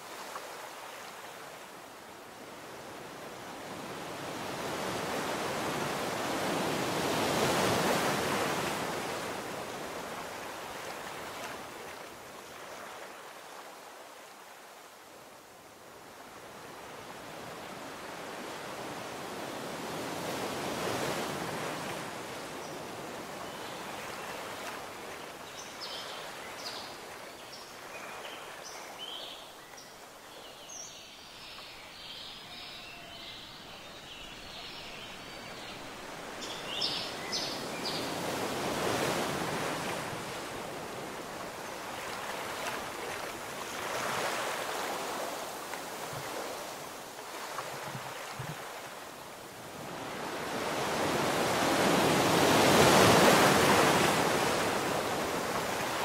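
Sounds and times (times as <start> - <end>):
ocean surf washing onto beach: 35.1 - 56.0.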